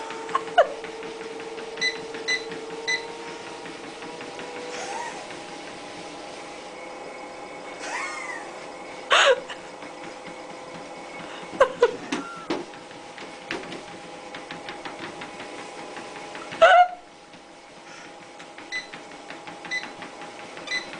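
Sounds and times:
treadmill running hum: 0.0s - 20.9s.

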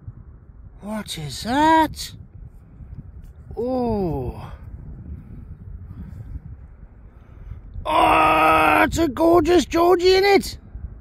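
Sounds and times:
man speaking: 0.8s - 2.2s, 3.6s - 4.6s, 8.8s - 10.6s.

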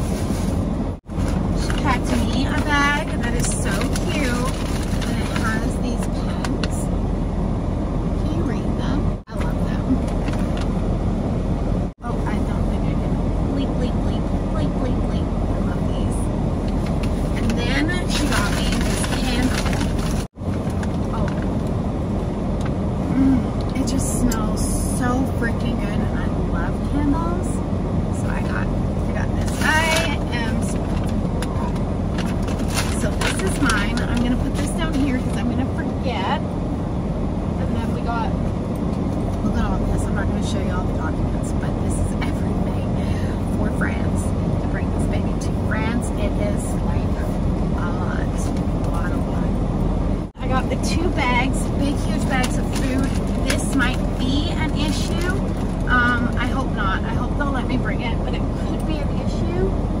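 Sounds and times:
paper and gift bag rustling: 0.0s - 5.8s, 17.0s - 20.3s
vehicle cabin rumble: 0.0s - 60.0s.

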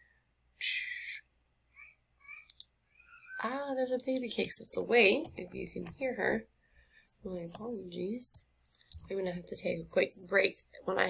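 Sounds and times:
baby squealing: 2.2s - 3.5s.

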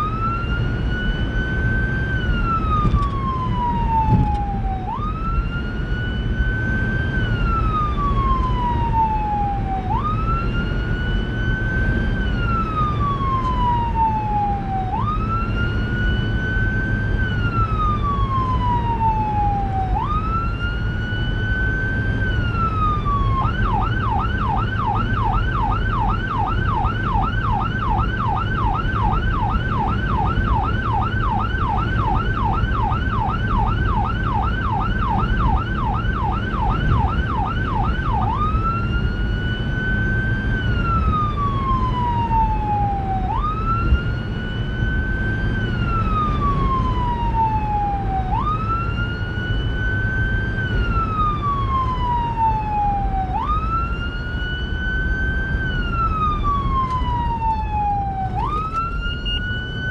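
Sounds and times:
electronic siren wailing and yelping: 0.0s - 59.9s
road and engine noise: 0.0s - 59.9s.

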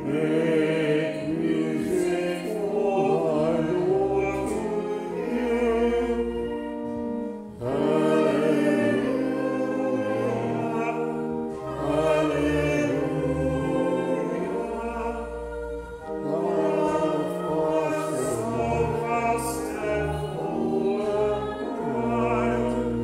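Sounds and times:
choir singing a hymn: 0.0s - 23.0s
sustained chordal accompaniment: 0.0s - 23.0s.

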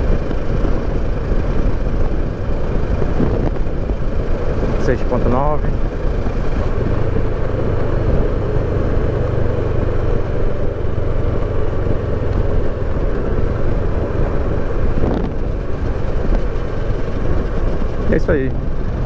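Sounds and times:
motorcycle engine cruising: 0.0s - 19.0s
wind and road noise: 0.0s - 19.0s.

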